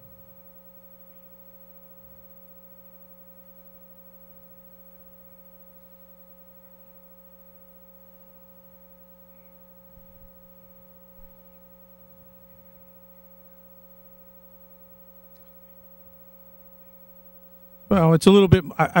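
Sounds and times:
faint electrical hum: 0:00.0 - 0:19.0.

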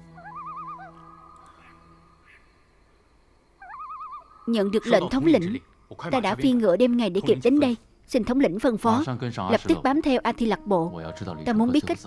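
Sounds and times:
night bird trilled call: 0:00.0 - 0:06.4.

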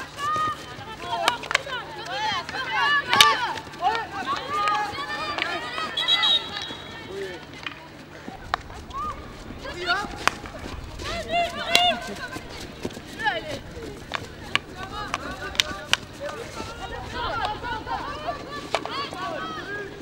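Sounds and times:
players shouting: 0:00.0 - 0:07.5, 0:08.3 - 0:20.0
hockey sticks striking ball: 0:07.5 - 0:19.6.

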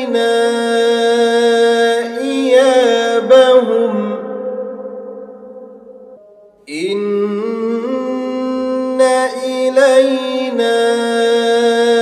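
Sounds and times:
man chanting melodically: 0:00.0 - 0:05.4, 0:06.7 - 0:12.0.

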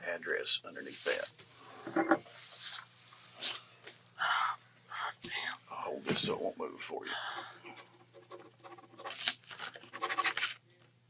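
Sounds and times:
pen scratching on paper: 0:07.8 - 0:10.5.

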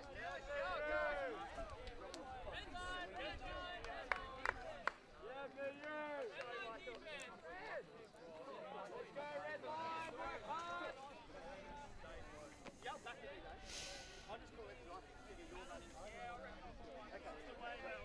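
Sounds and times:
people chattering and calling: 0:00.0 - 0:18.0.

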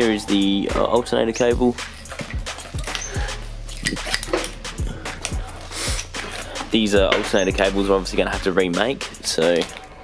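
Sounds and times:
plastic plugs and wires clinking: 0:00.8 - 0:07.6, 0:09.2 - 0:10.0.

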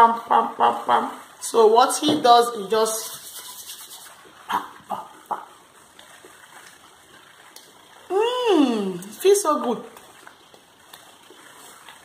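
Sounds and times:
hands rubbing together: 0:02.9 - 0:04.2.

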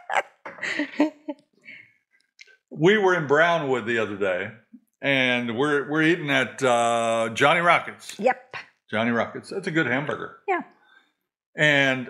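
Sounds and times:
woman laughing: 0:00.0 - 0:01.4.

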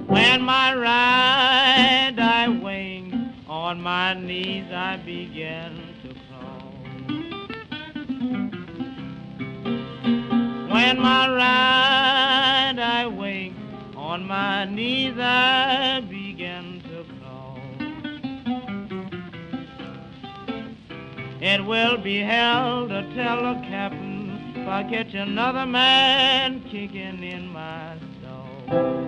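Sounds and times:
acoustic guitar picking: 0:00.0 - 0:29.0
blues singing: 0:00.0 - 0:29.0.

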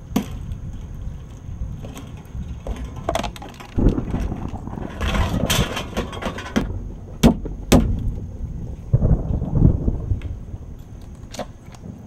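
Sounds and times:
trash clattering into dumpster: 0:02.7 - 0:08.0
sharp knocks: 0:03.8 - 0:08.1
low thumps: 0:03.8 - 0:10.8.

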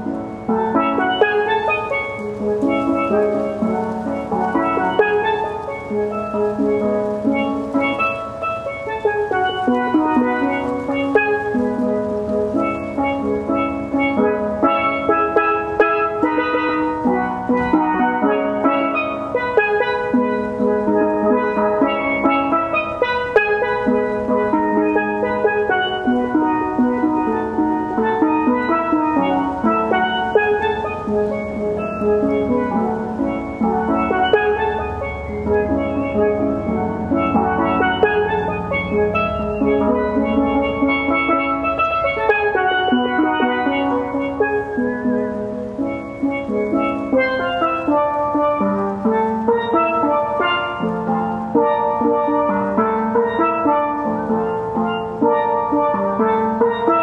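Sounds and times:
steelpan playing slow melody: 0:00.0 - 0:57.0.

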